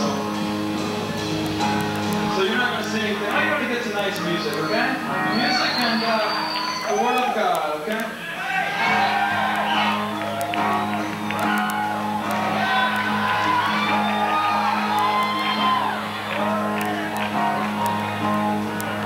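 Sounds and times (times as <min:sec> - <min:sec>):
audience shouting and whooping: 0:04.8 - 0:19.0.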